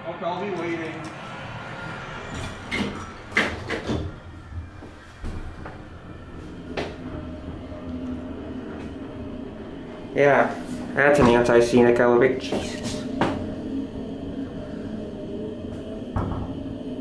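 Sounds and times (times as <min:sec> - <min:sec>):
elevator car humming: 0:00.0 - 0:17.0
elevator doors sliding shut: 0:01.9 - 0:17.0.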